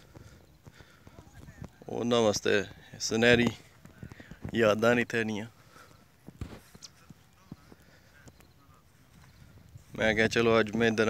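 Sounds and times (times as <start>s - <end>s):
faint irregular clicks and knocks: 0.0s - 9.9s.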